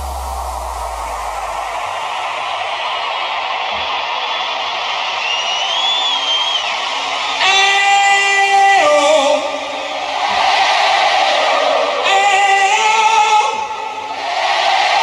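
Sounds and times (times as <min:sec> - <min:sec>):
low bass note: 0:00.0 - 0:02.5
held pitched note with overtones: 0:00.0 - 0:02.6
synth line gliding: 0:00.0 - 0:02.8
noise sweep: 0:00.0 - 0:04.0.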